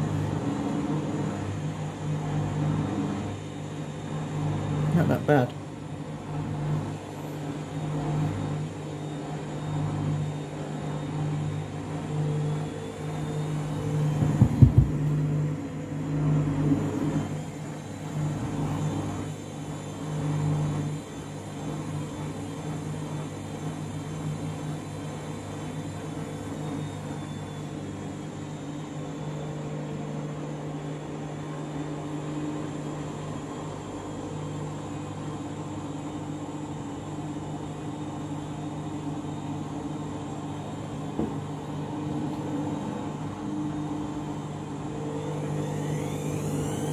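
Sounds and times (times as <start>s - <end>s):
washing machine humming: 0.0s - 46.9s.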